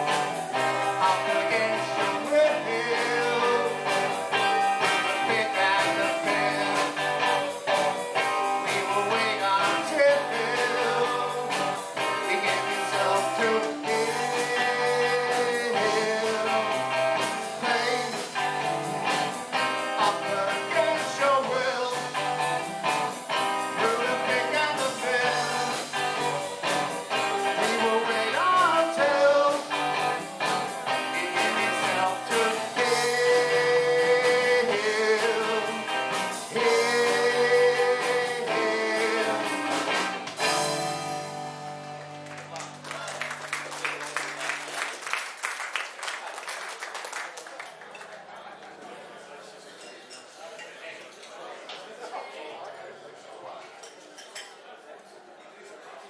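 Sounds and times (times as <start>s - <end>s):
electric guitars: 0.0s - 44.7s
drums: 0.0s - 47.3s
man singing lead vocal: 0.6s - 4.2s, 4.8s - 7.1s, 8.5s - 18.6s, 19.8s - 22.4s, 23.6s - 26.3s, 27.2s - 30.2s, 30.9s - 40.0s.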